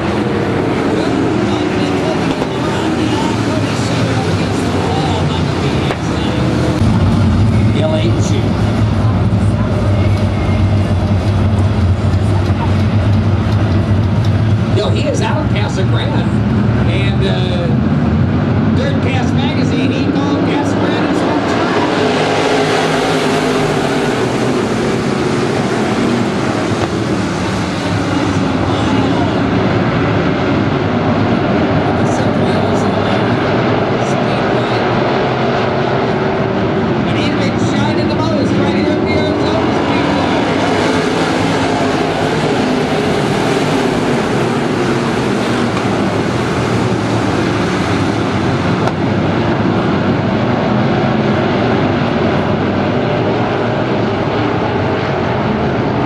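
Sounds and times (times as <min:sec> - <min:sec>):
race car engines droning: 0:00.0 - 0:56.0.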